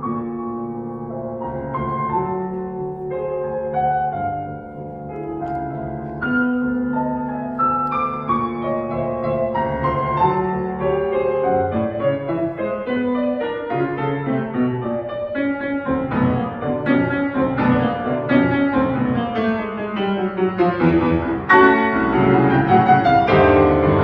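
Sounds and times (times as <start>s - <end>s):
classical piano: 0.0s - 24.0s.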